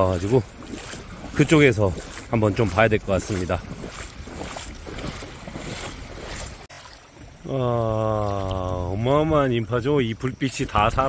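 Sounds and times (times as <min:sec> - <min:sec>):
footsteps sloshing through water: 0:00.0 - 0:11.0.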